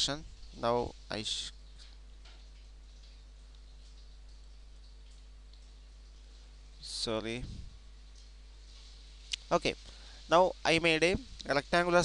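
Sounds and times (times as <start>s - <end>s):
background hiss: 0.0s - 12.0s
steady low hum: 0.0s - 12.0s.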